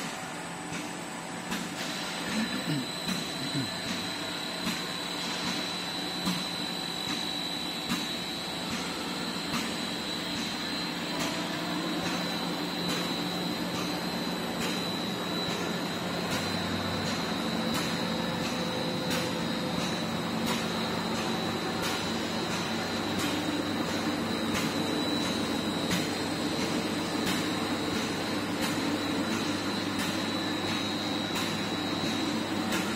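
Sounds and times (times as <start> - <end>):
machine hum: 1.9 - 32.9.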